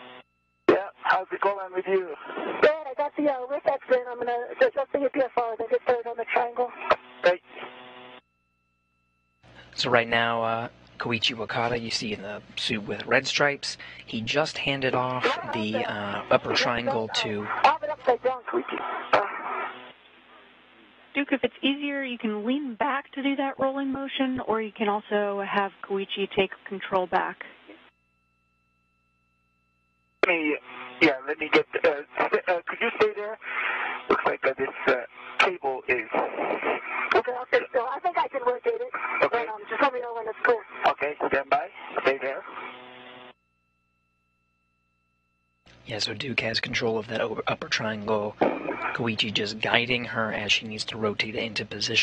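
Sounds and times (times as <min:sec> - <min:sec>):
burst of radio static: 0:00.0 - 0:08.2, 0:09.8 - 0:21.8, 0:30.2 - 0:43.3, 0:45.9 - 0:52.0
steady low hum: 0:00.0 - 0:52.0
faint radio hiss: 0:00.7 - 0:08.1, 0:09.4 - 0:27.9, 0:30.2 - 0:43.3, 0:45.7 - 0:52.0.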